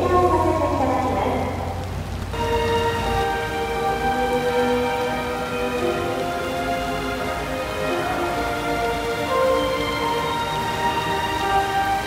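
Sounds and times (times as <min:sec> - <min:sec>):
rain falling: 0:00.0 - 0:12.0
slow melody of held notes: 0:00.0 - 0:12.0.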